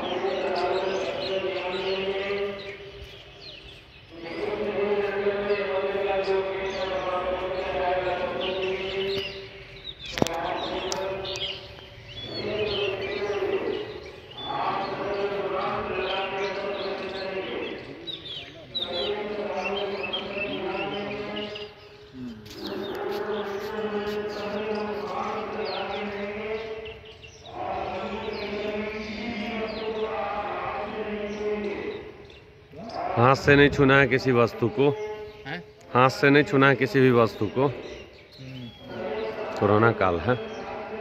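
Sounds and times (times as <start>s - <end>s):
devotional chanting: 0.0s - 41.0s
small birds chirping: 0.0s - 41.0s.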